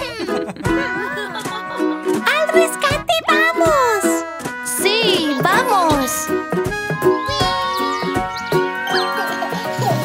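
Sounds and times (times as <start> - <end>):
cartoon background music: 0.0 - 10.0
gliding cat-like pitch sounds: 7.0 - 9.2.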